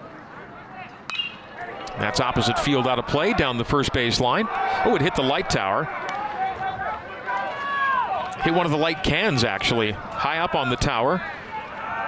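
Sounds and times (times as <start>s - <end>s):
faint crowd chatter: 0.0s - 12.0s
baseball bat ping: 1.1s - 1.6s.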